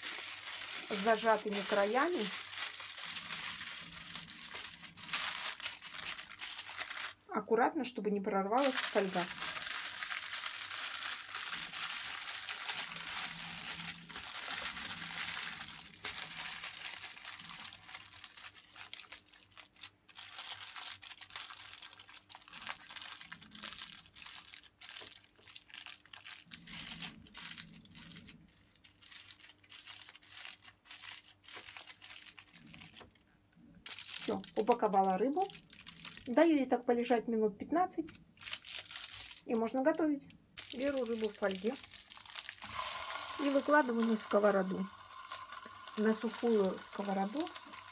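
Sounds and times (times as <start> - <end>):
aluminium foil crinkling: 0.0 - 7.4, 8.5 - 37.2, 38.0 - 40.0, 40.6 - 47.9.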